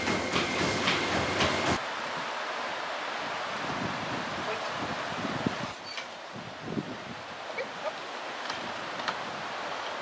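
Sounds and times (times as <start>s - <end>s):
dog paws striking treadmill belt: 0.0s - 1.8s
treadmill rumble and whine: 0.0s - 1.8s
outdoor hiss: 0.0s - 10.0s.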